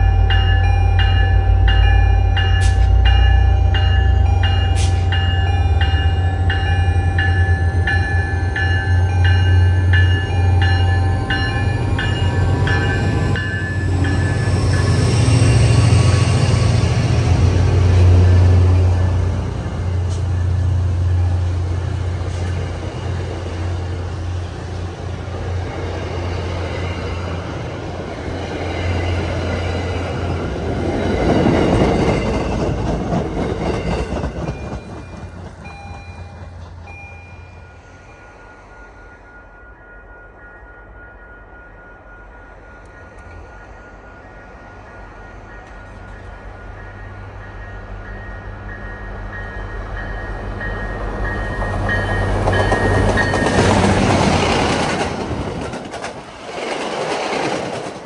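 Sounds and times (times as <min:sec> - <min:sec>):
locomotive bell ringing: 0:00.0 - 0:21.8, 0:33.5 - 0:54.5
train wheels on rails: 0:00.0 - 0:39.3, 0:41.9 - 0:58.0
diesel locomotive engine rumbling: 0:00.0 - 0:58.0.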